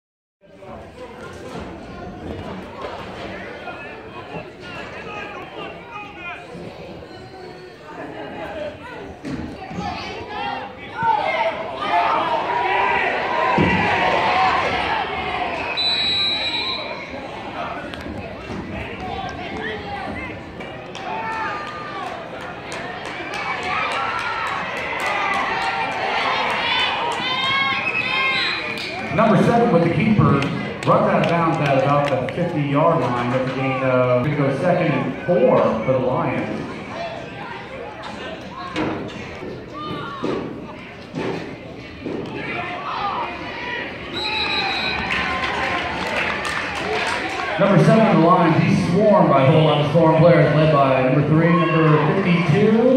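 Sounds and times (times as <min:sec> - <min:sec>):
spectators and players shouting: 0:03.2 - 0:32.0, 0:32.6 - 0:41.2, 0:41.8 - 0:52.9
short high whistle: 0:15.7 - 0:16.9.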